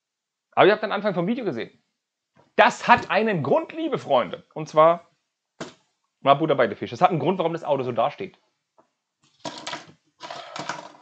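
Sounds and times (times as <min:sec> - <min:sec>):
plastic bricks clicking and rattling: 0:09.4 - 0:11.0.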